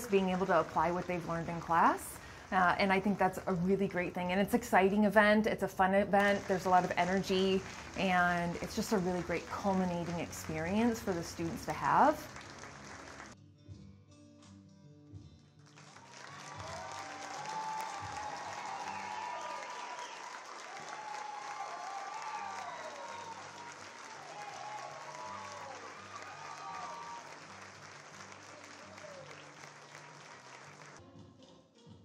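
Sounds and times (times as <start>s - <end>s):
audience applause: 0.0s - 3.6s, 6.2s - 13.4s, 15.7s - 31.0s
background music: 0.0s - 32.0s.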